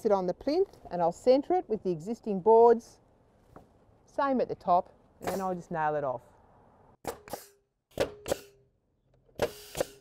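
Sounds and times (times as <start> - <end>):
nail gun shots into timber: 7.0 - 8.6, 9.4 - 10.0.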